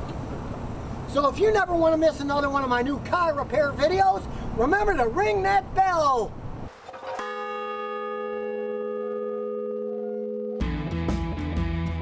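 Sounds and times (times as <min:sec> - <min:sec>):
large bell ringing: 0:06.9 - 0:10.7.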